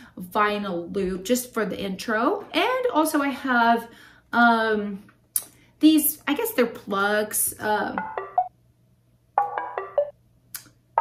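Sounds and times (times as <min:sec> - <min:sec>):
staccato synth pluck notes: 0:08.0 - 0:08.5, 0:09.4 - 0:10.1.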